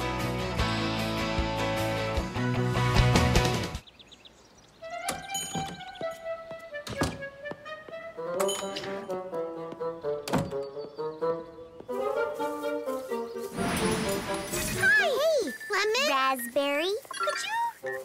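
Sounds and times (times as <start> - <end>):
light background music: 4.7 - 15.7.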